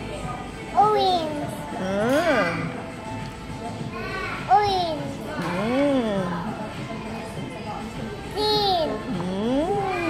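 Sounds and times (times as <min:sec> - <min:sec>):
toddler sing-song vocalizing: 0:00.8 - 0:02.6, 0:08.3 - 0:10.0.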